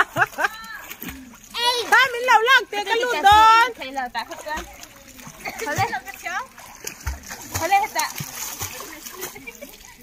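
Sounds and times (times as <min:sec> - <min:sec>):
pool water splashing: 0:00.0 - 0:10.0
children's voices: 0:01.5 - 0:03.3.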